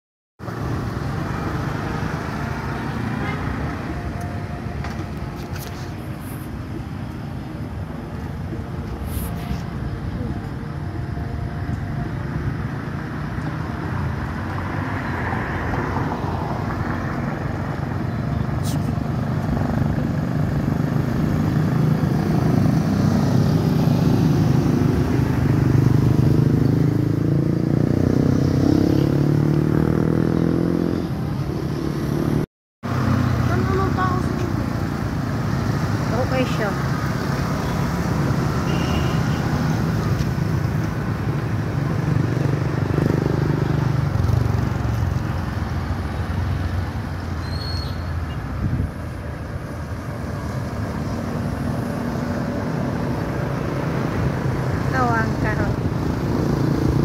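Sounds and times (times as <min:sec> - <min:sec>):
road traffic noise: 0:00.4 - 0:57.0
vehicle engine: 0:00.4 - 0:57.0.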